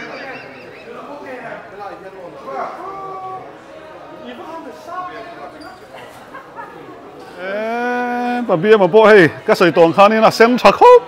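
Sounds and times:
people talking quietly: 0:00.0 - 0:11.0.

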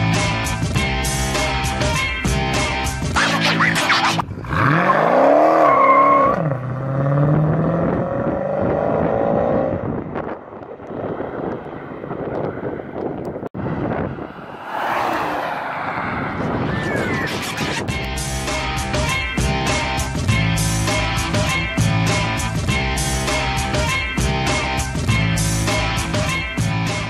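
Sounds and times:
background music: 0:00.0 - 0:04.2, 0:17.9 - 0:27.0
road noise: 0:00.0 - 0:27.0
car engine revving: 0:03.2 - 0:12.8.

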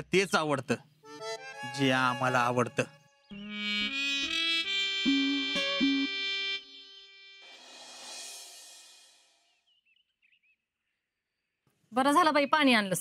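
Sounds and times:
instrumental music score: 0:01.0 - 0:09.4.

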